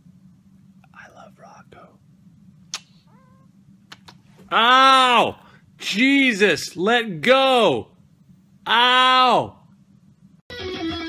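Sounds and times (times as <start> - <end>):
low steady hum: 0.0 - 11.0
man whispering: 0.8 - 2.0
cat meowing faintly: 3.1 - 3.5.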